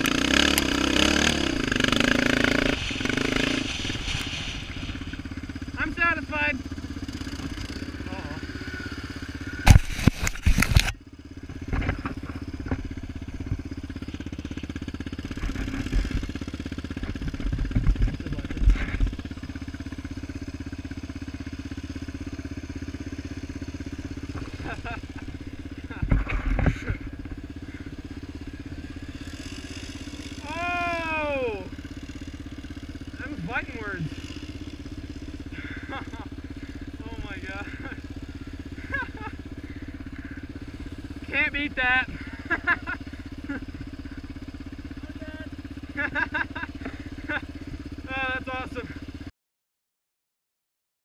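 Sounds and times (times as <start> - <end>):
quad engine running: 0.0 - 49.3.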